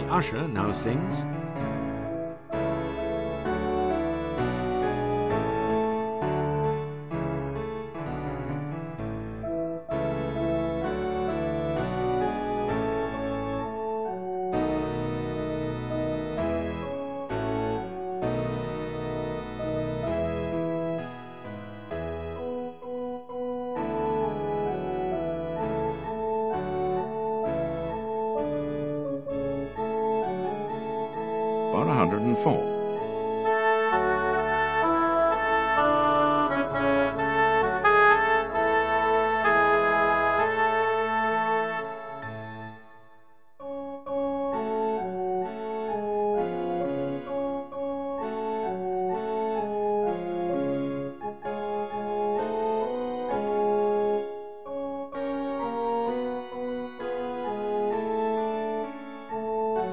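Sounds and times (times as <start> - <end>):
electronic keyboard accompaniment: 0.0 - 59.9
organ-like synthesizer chords: 0.0 - 59.9
oboe sound held notes: 33.5 - 43.1.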